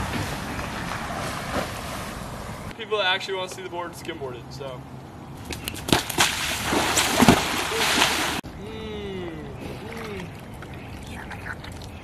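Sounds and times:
bare feet splashing through water: 0:05.4 - 0:08.4
skimboard smacking onto water: 0:05.5 - 0:08.4.

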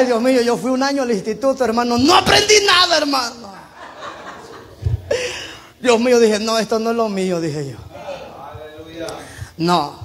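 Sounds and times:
man speaking: 0:05.8 - 0:10.0.

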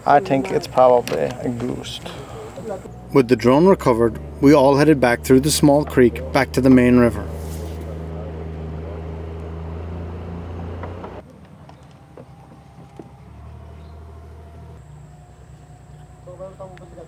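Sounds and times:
outboard motor running: 0:00.0 - 0:17.0.

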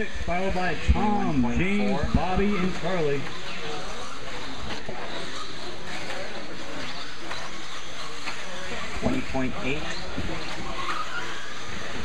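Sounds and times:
rc car motors and tyres: 0:00.0 - 0:12.0.

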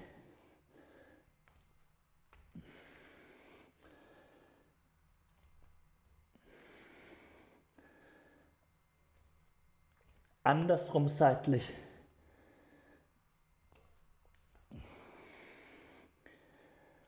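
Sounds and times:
faint breaths: 0:00.0 - 0:01.7, 0:02.4 - 0:04.9, 0:06.3 - 0:08.9, 0:11.7 - 0:13.9, 0:14.6 - 0:17.0.

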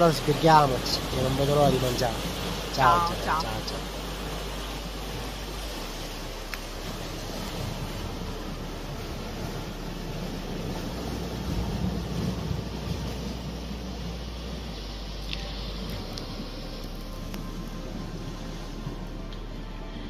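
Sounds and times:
sea waves washing against rocks: 0:00.0 - 0:19.6
wind on microphone: 0:01.8 - 0:19.1.

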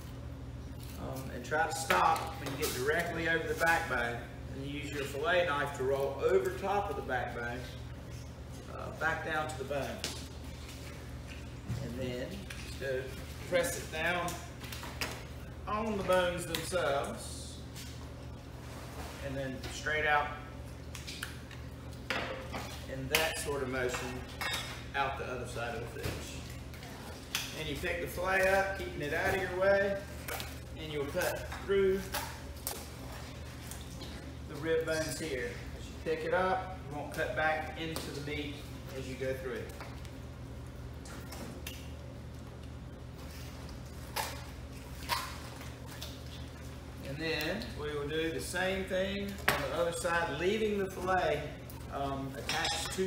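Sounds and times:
steady low hum: 0:00.0 - 0:53.0
wet knife and handling sounds: 0:04.8 - 0:20.0, 0:20.6 - 0:53.0.

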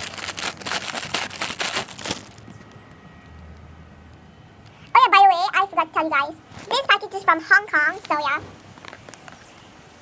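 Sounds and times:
plastic bag crinkling: 0:00.0 - 0:02.6.

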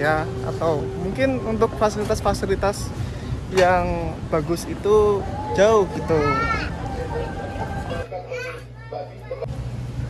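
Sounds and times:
people talking indistinctly: 0:00.0 - 0:09.5
steady background din: 0:00.0 - 0:10.0.

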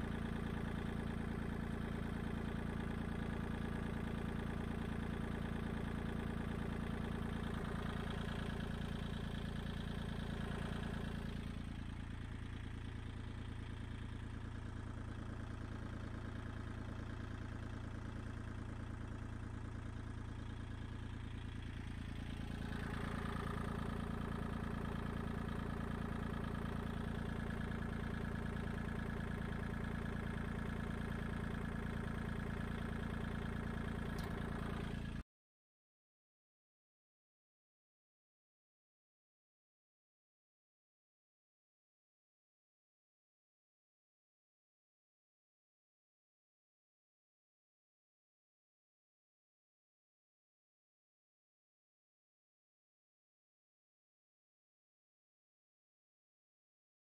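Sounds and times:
tractor diesel engine idling: 0:00.0 - 0:35.2.

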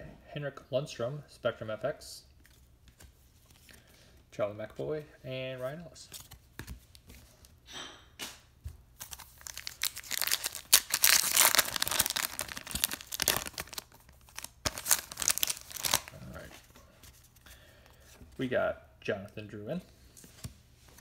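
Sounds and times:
foil wrapper crinkling: 0:09.0 - 0:16.4
foil pack tearing: 0:09.1 - 0:16.1.

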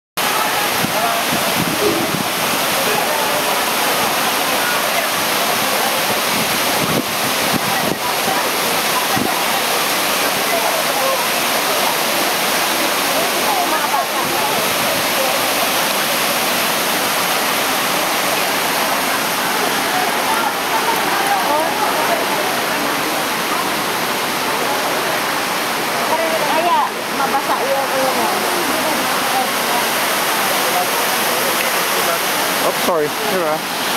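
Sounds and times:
waterfall rushing: 0:00.2 - 0:33.9.

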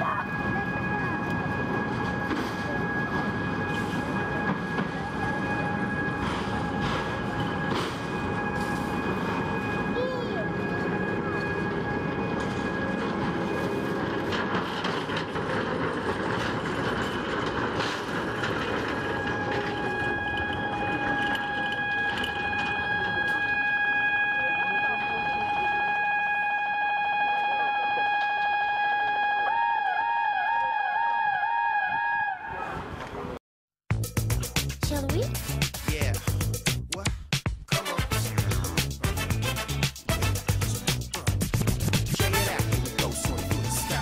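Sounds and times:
warning tone: 0:00.0 - 0:14.0, 0:18.8 - 0:29.5
machinery rumbling: 0:00.0 - 0:26.3, 0:38.1 - 0:44.0.

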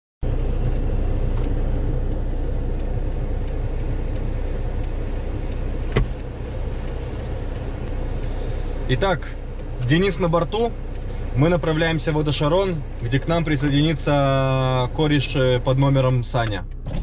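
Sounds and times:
car engine and road noise: 0:00.2 - 0:17.0.

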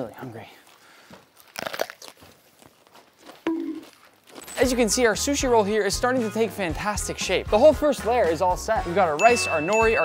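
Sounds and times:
chewing crunches: 0:01.2 - 0:04.2
crunch of biting cucumber: 0:01.4 - 0:02.7.

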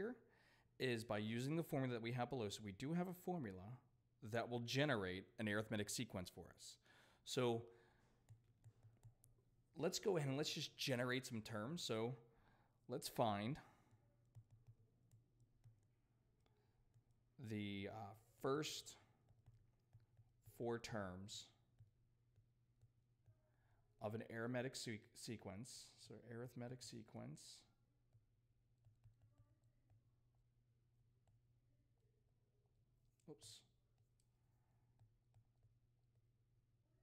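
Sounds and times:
stylus tapping tablet screen: 0:08.1 - 0:10.7, 0:13.1 - 0:17.5, 0:18.2 - 0:23.8, 0:27.8 - 0:36.6.

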